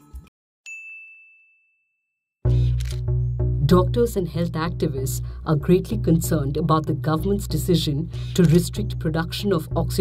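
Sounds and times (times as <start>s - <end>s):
background music: 2.5s - 10.0s.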